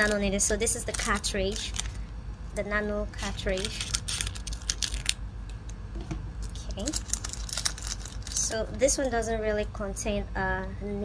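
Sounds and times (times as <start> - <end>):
blister pack crinkling and tearing: 0.0 - 2.0, 3.2 - 5.2, 6.4 - 8.5.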